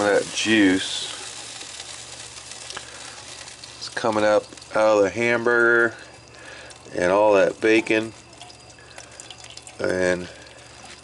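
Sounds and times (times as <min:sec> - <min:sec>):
grease sizzling: 0:00.0 - 0:11.0.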